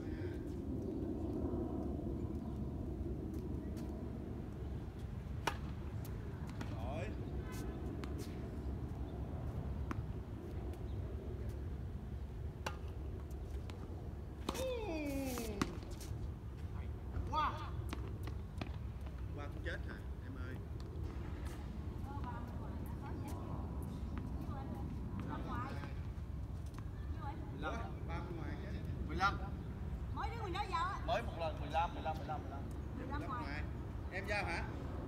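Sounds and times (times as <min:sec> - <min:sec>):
steady low rumble: 0:00.0 - 0:30.3
tennis balls struck by rackets: 0:05.4 - 0:06.8, 0:12.6 - 0:13.8.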